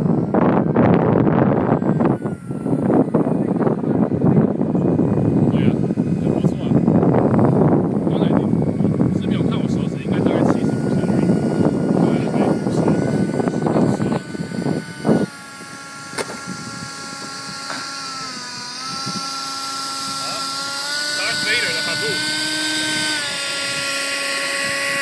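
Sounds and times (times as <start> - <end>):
model jet fan whine: 0.0 - 25.0.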